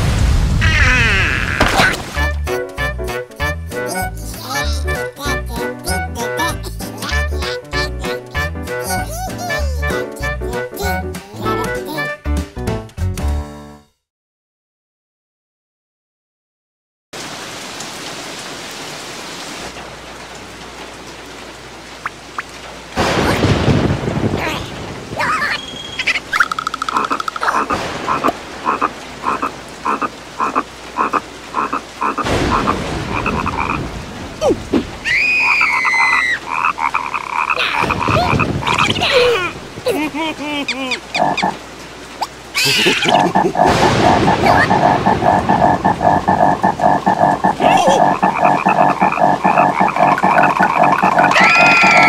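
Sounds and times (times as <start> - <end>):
gliding cartoon voice sounds: 25.3 - 32.7, 34.4 - 41.6, 42.2 - 52.0
cartoon frog croaking: 26.0 - 33.8, 35.4 - 39.3, 40.9 - 41.6, 42.2 - 52.0.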